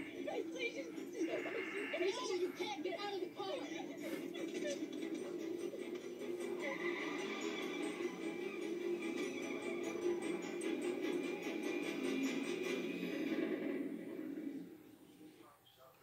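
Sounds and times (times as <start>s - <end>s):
drama soundtrack music from television: 0.0s - 16.0s.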